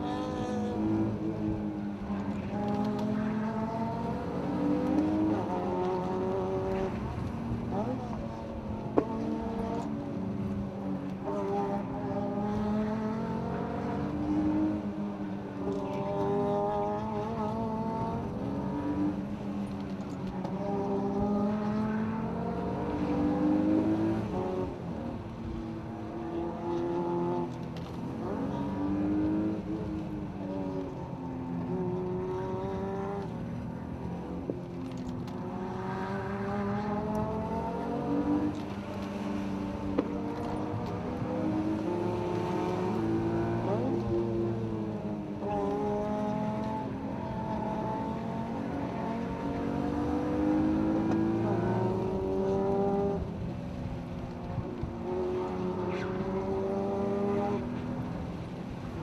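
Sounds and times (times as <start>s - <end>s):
car engine revving: 34.8s - 53.3s, 55.0s - 58.8s.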